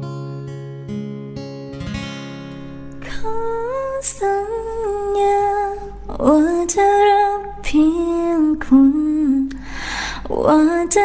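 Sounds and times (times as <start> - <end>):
acoustic guitar chord strummed: 0.0 - 8.4.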